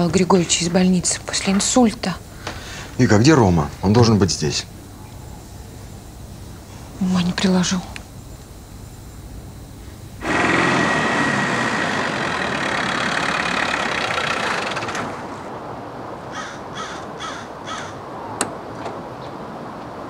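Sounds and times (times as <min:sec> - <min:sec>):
crow cawing: 0:16.3 - 0:18.1.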